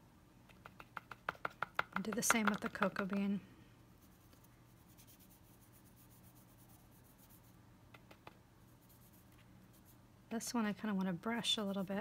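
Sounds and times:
paintbrush dabbing taps: 0.5 - 3.3.

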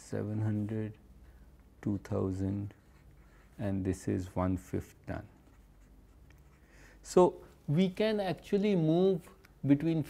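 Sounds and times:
marker writing on paper: 5.2 - 6.7.

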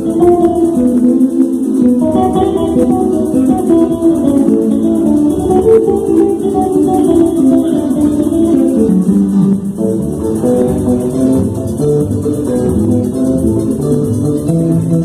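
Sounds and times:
electric bass line: 0.0 - 15.0
hand percussion: 0.0 - 15.0
strummed and plucked small guitar: 0.0 - 15.0.

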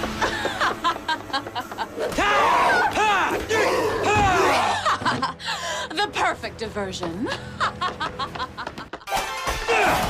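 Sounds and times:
people shouting and yelling: 2.0 - 4.8, 9.4 - 10.0.

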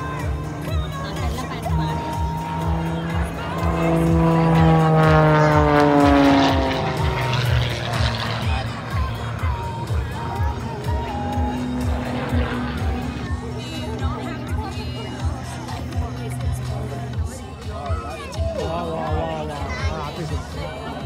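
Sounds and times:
plane engine passing overhead: 0.0 - 21.0.

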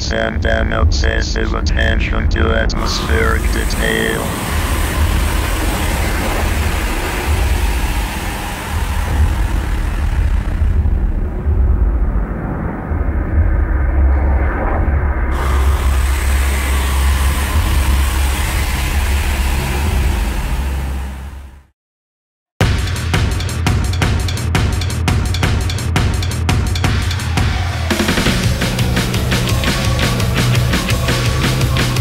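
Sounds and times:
low rumbling drone: 0.0 - 21.7, 27.3 - 32.0
high hiss: 2.8 - 11.0, 15.4 - 21.2.

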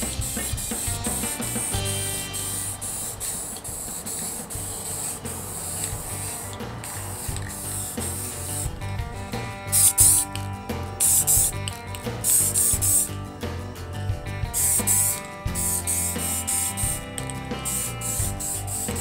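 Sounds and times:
aerosol spray can hissing: 0.0 - 8.7, 9.7 - 13.1, 14.6 - 19.0
background music with steady beat: 0.0 - 19.0.

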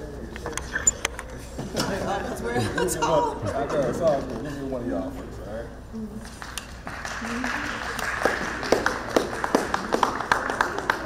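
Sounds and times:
people clapping: 6.2 - 11.0.

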